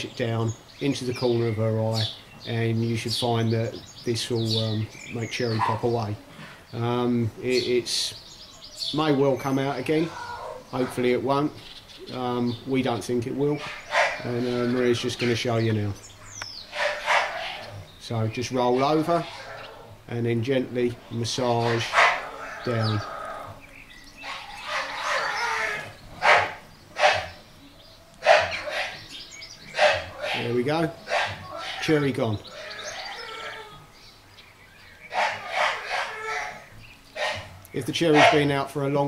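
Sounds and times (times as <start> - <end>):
puppy snuffling: 28.2 - 32.8.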